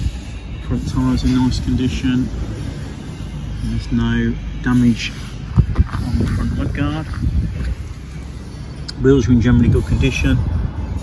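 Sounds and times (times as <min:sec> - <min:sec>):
wind rumble on microphone: 0:00.0 - 0:01.9, 0:05.4 - 0:11.0.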